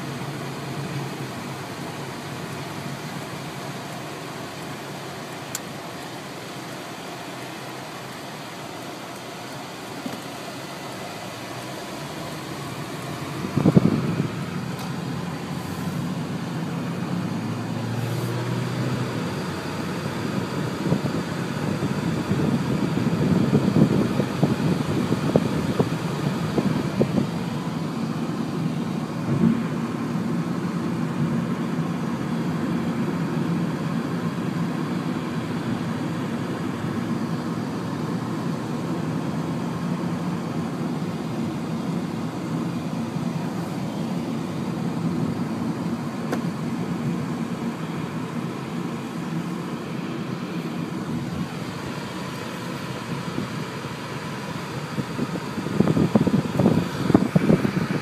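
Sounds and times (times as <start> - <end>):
car road and engine noise: 0.0 - 58.0.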